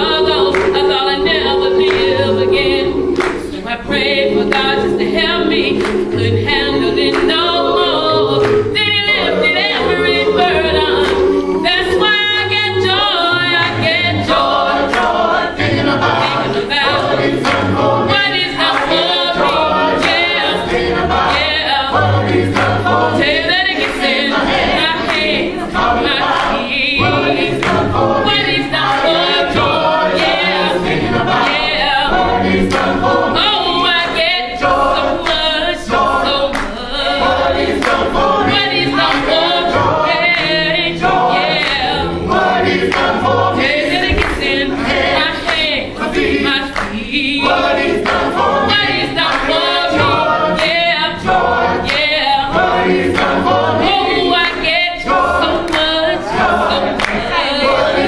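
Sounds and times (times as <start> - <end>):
gospel group singing: 0.0 - 58.0.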